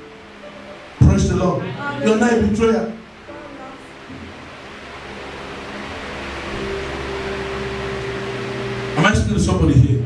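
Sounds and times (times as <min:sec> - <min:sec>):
low hum with hiss: 0:00.0 - 0:10.0
steady higher tone: 0:00.0 - 0:10.0.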